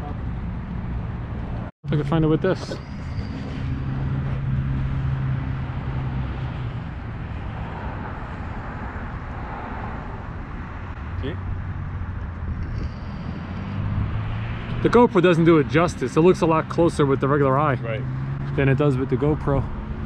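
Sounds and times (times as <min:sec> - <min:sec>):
engine drone: 0:00.0 - 0:20.0.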